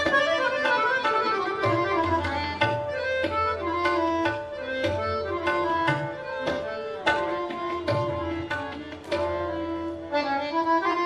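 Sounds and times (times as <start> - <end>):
tabla strokes: 0.0 - 10.2
harmonium melody: 0.0 - 11.0.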